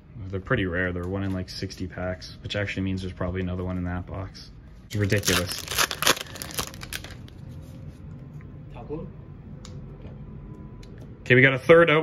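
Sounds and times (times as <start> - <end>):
cards rustling: 4.9 - 7.3
wrapper tearing open: 4.9 - 7.3.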